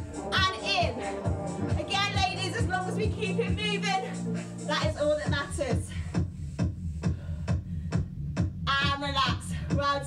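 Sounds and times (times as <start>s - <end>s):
upbeat electronic workout music: 0.0s - 10.0s.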